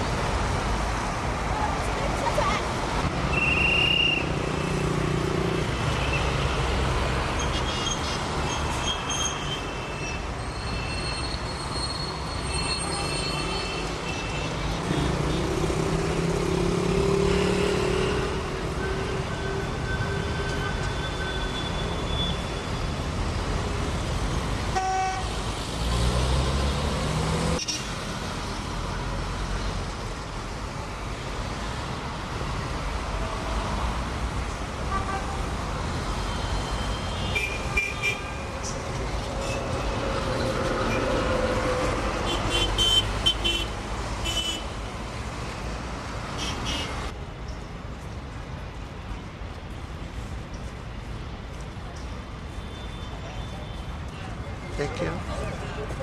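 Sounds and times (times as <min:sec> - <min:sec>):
cars passing: 0:00.0 - 0:10.4, 0:11.4 - 0:56.0
buses passing: 0:00.0 - 0:56.0
motorbikes passing: 0:04.2 - 0:07.2, 0:14.8 - 0:18.8
vehicle horns honking: 0:24.7 - 0:25.3, 0:36.7 - 0:38.3, 0:42.3 - 0:44.6.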